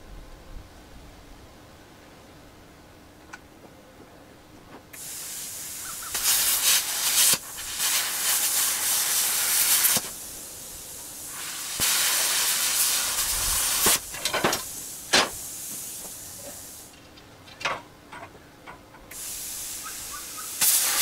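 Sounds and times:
cutting torch hissing: 5.0 - 17.0, 19.1 - 21.0.

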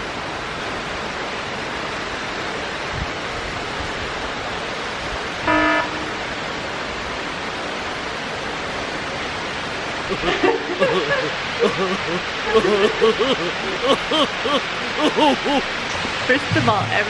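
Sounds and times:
falling water rushing: 0.0 - 17.0
vehicle horn toot: 5.5 - 6.2.

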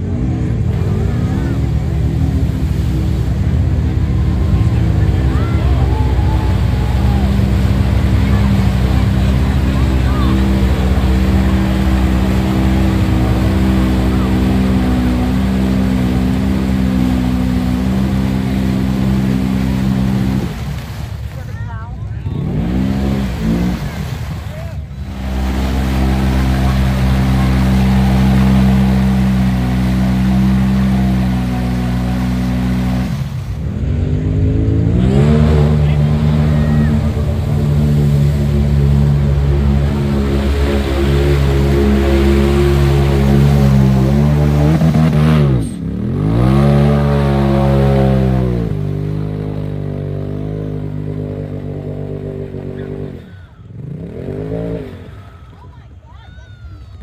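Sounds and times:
utility vehicle engine revving: 0.0 - 57.0
wheels churning through mud: 0.0 - 57.0.

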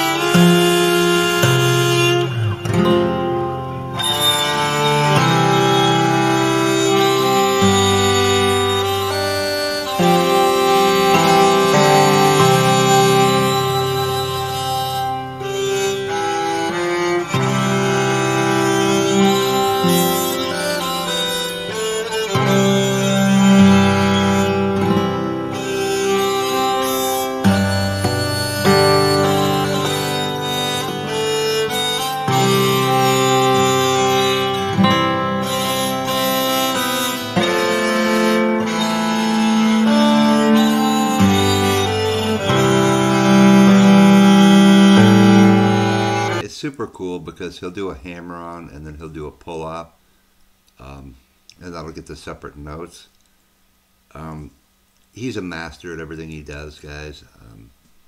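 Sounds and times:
guitar strum: 0.0 - 46.4
sustained acoustic guitar melody: 0.0 - 46.4.

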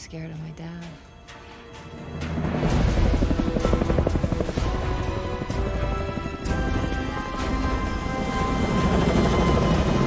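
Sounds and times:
helicopter rotors chopping: 2.1 - 10.0.

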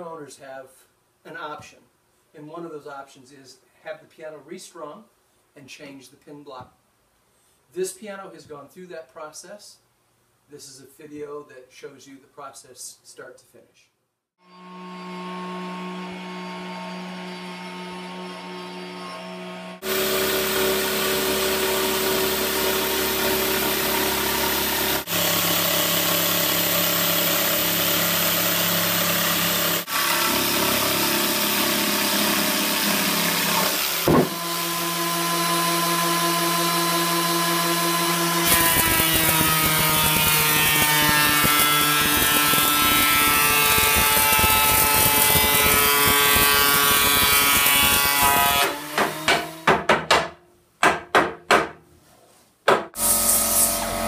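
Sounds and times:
handheld power tool on wood: 14.4 - 49.8, 53.0 - 54.0
woodworking machine running: 14.6 - 48.9.

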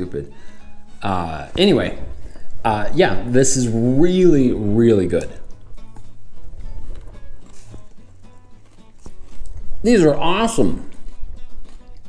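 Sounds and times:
quiet background music: 0.0 - 12.0
close-up chewing: 0.7 - 2.6, 4.9 - 12.0
man's voice: 1.0 - 5.4, 9.8 - 10.9
crisp crunches: 5.2 - 12.0.

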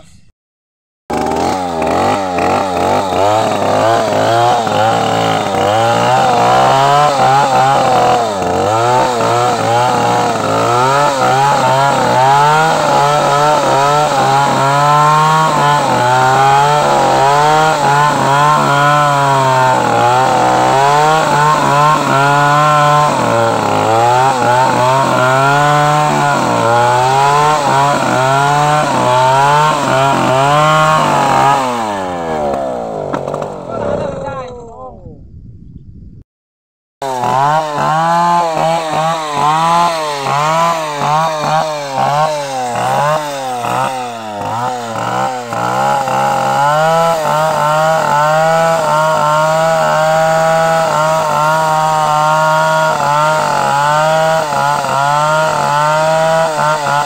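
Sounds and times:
chainsaw cutting wood: 1.1 - 34.4, 37.0 - 57.0.

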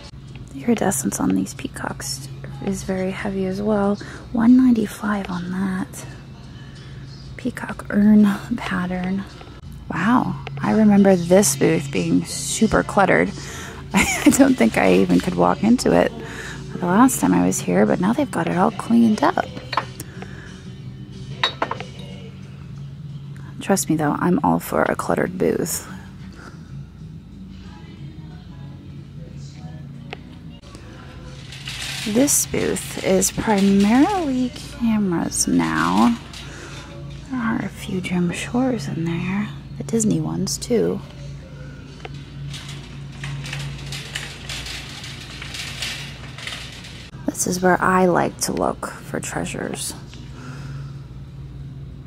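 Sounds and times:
steady low hum: 0.0 - 52.0
glassware clinking: 21.4 - 22.2.

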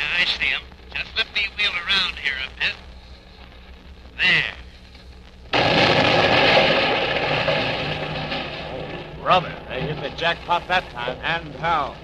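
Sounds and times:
low steady rumble: 0.0 - 12.0
large explosion rush: 5.6 - 12.0.

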